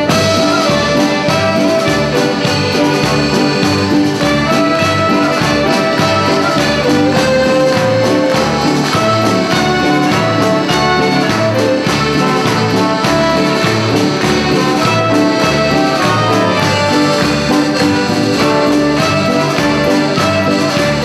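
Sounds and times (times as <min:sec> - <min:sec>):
band playing instrumental music: 0:00.0 - 0:21.0
horns and accordion melody: 0:00.0 - 0:21.0.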